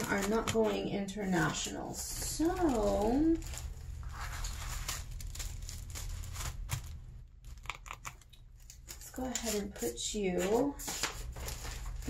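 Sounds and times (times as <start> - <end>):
tissue paper rustling: 0.0 - 7.6, 8.6 - 12.0
steady low hum: 0.0 - 9.8.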